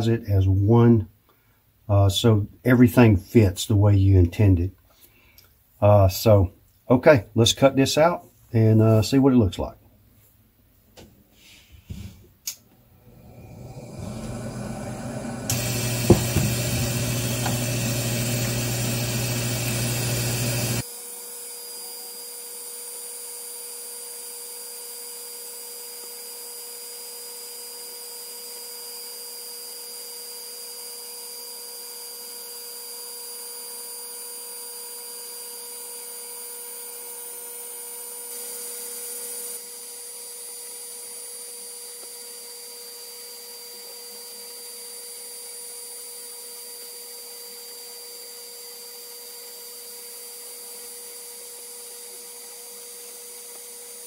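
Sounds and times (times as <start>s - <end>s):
laser cutter machine whine: 13.1s - 54.0s.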